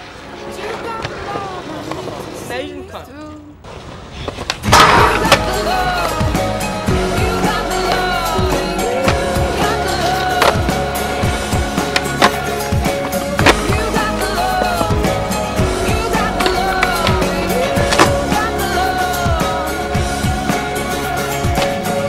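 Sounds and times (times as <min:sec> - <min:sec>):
skateboard wheels rolling on concrete: 0:00.0 - 0:22.0
skateboard clacks popping and landing: 0:04.2 - 0:06.2, 0:10.4 - 0:10.8, 0:11.8 - 0:14.0, 0:16.4 - 0:18.2
music track: 0:04.7 - 0:22.0.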